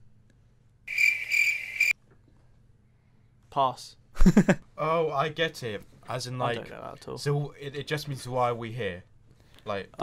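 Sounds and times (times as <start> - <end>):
crickets chirping: 0.9 - 1.9.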